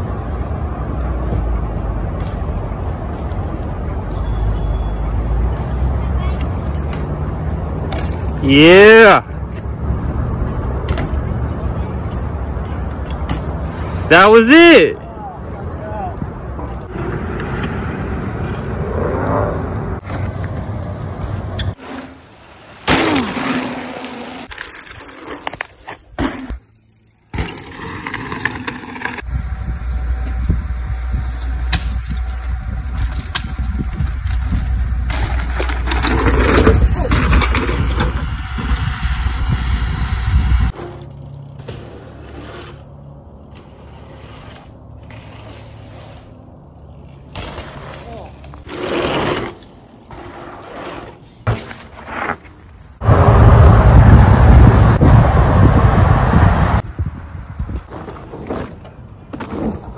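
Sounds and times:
bicycle tyres rolling: 0.0 - 14.1, 15.2 - 59.9
loud low rumble: 53.0 - 56.8.

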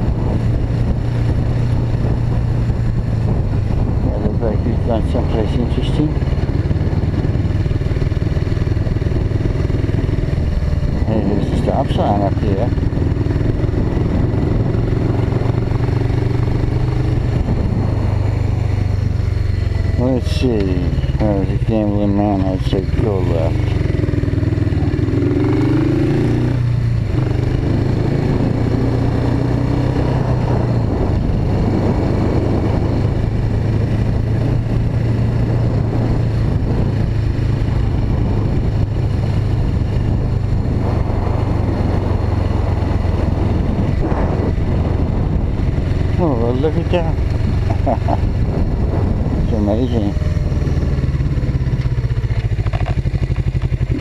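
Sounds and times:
motorcycle engine droning: 0.0 - 54.0.

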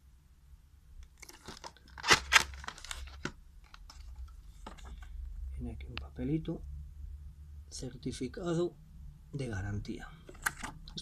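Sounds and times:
plastic case snapping open: 1.1 - 3.8.

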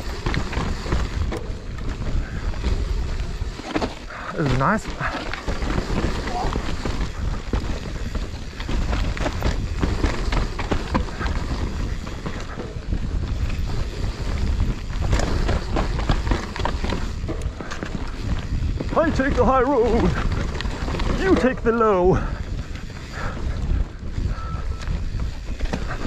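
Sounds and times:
bike clicks and rattles: 0.0 - 26.0
bike tyres rolling over soil: 0.0 - 26.0
wind buffeting microphone: 0.0 - 26.0.

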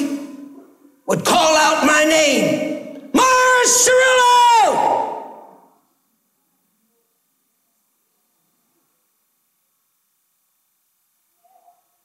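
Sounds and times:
man shouting: 1.1 - 5.6.

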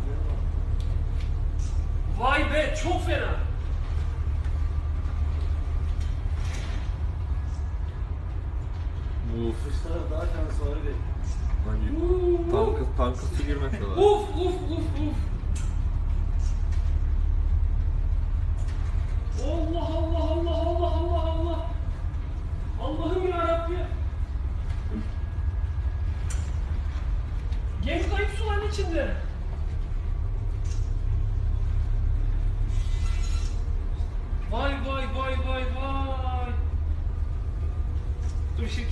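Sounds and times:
ship engine low rumble: 0.0 - 38.9.

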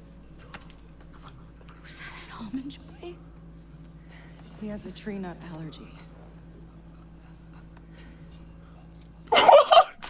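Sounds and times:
low steady hum: 0.0 - 10.0
whispered dialogue: 0.2 - 9.2.

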